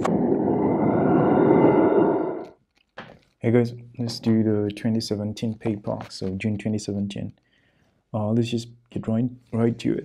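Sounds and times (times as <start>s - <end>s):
low noisy drone: 0.0s - 2.6s.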